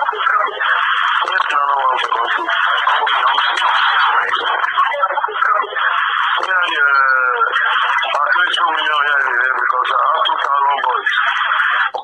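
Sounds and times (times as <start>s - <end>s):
tinny phone speech through speaker: 0.0s - 12.0s.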